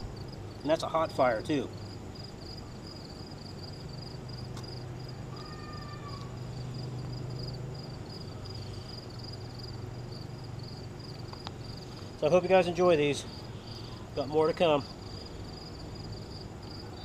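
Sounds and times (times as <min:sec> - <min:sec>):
crickets chirping: 0:00.0 - 0:17.0
low background hum: 0:00.0 - 0:17.0.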